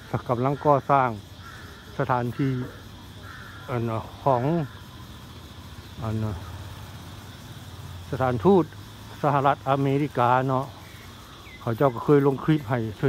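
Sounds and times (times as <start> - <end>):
man speaking: 3.7 - 4.7, 6.0 - 6.6, 8.1 - 10.8, 11.6 - 13.0.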